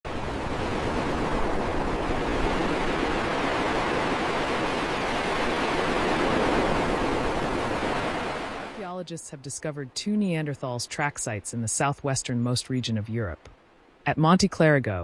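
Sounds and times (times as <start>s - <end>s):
ocean surf rushing: 0.1s - 8.9s.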